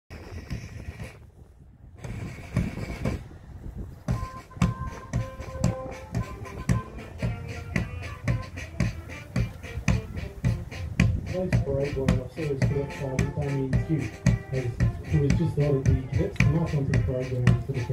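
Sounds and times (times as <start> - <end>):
parade march music: 4.0 - 17.9
steady drum beat: 4.0 - 17.9
held melody notes: 4.1 - 17.9.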